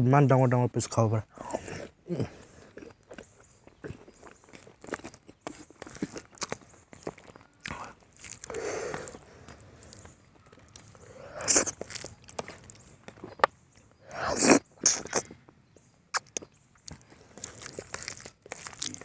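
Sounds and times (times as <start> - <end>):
mouth chewing with wet smacks: 1.4 - 19.0.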